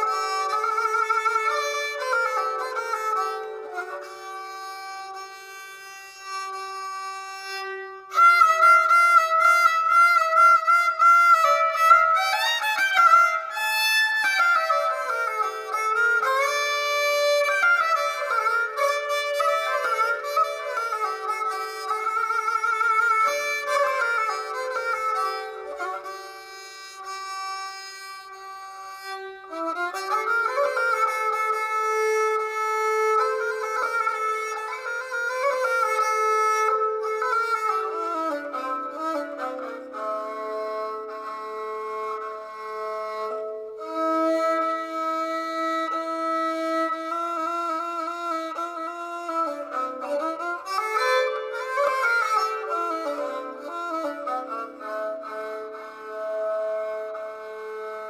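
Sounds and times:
bowed fiddle melody: 0.0s - 58.0s.

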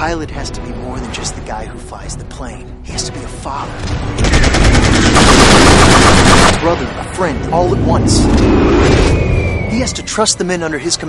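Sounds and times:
machine-gun fire: 4.2s - 6.8s.

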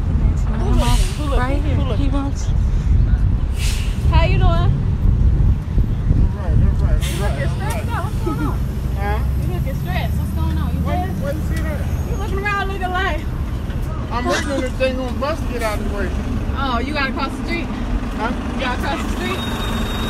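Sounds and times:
voices talking: 0.0s - 4.8s, 6.1s - 20.0s
bus engine idling: 0.0s - 20.0s.

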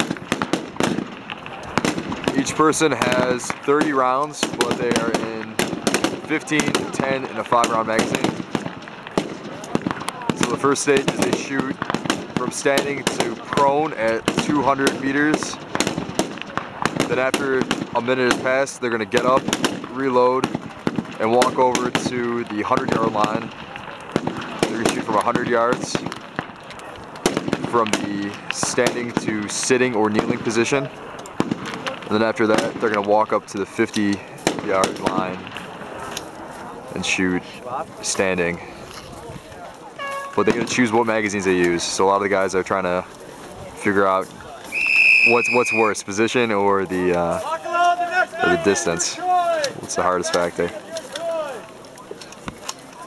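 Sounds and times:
rifle shots: 0.0s - 33.0s.

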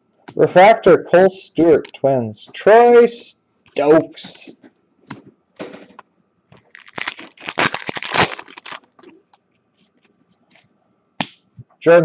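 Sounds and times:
man speaking: 0.4s - 4.6s, 11.8s - 12.0s.

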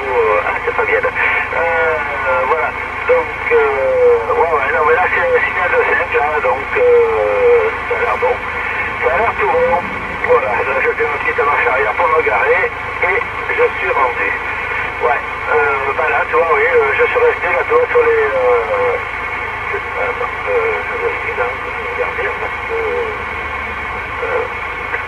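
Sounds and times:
voice over radio speaker: 0.0s - 23.2s, 24.1s - 25.0s
radio background hiss: 0.0s - 23.3s, 24.1s - 25.0s.

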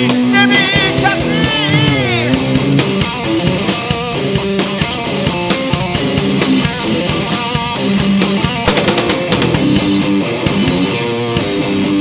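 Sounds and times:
bass: 0.0s - 12.0s
electric guitar: 0.0s - 12.0s
dense drum hits: 8.4s - 10.0s.

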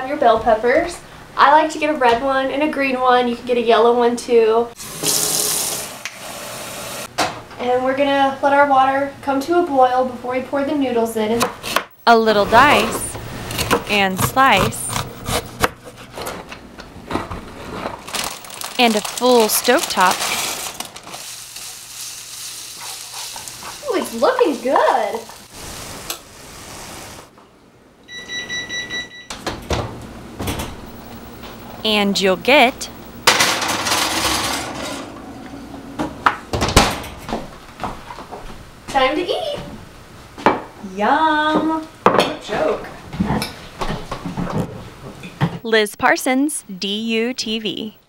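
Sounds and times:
faucet running into sink: 4.8s - 7.0s
scraping in a skillet: 19.9s - 27.3s
food sizzling in a skillet: 21.1s - 27.3s
electronic appliance beep: 28.1s - 29.4s.

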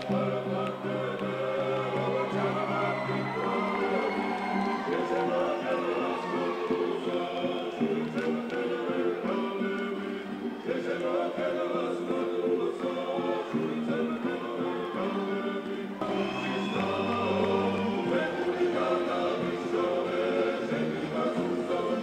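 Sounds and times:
choir singing in parts: 0.0s - 22.0s
low held vocal drone: 0.0s - 22.0s.

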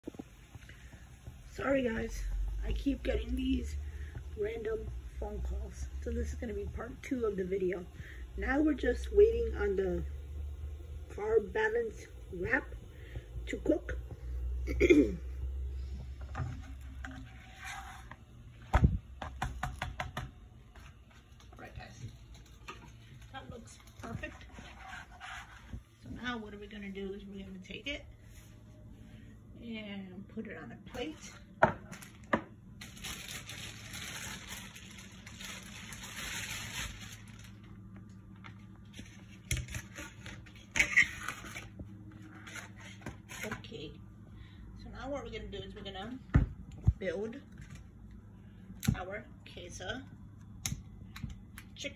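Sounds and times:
low hum: 0.0s - 19.2s
rustling or scraping: 16.1s - 18.3s, 22.6s - 26.3s, 38.8s - 43.7s.

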